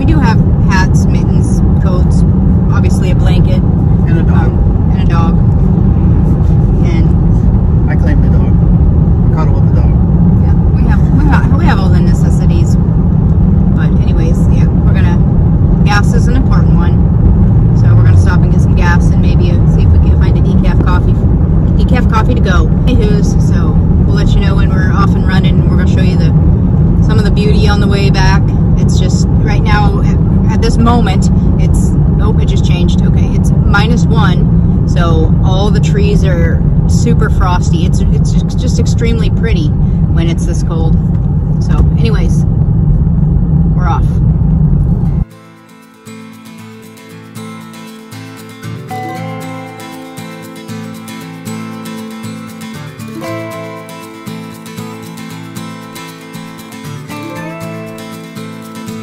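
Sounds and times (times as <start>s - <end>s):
car engine and road rumble: 0.0s - 59.0s.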